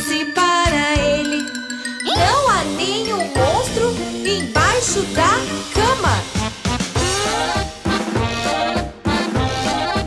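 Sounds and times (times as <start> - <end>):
tinkling bell-like chime: 0.0 - 6.0
children's song music: 0.0 - 10.0.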